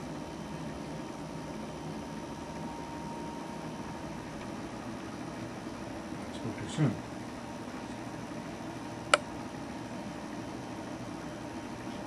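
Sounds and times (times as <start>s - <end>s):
room noise hum and hiss: 0.0s - 12.0s.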